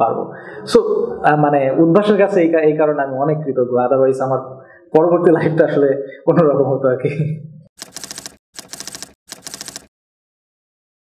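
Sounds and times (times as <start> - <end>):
typewriter key clacks: 7.8 - 9.9.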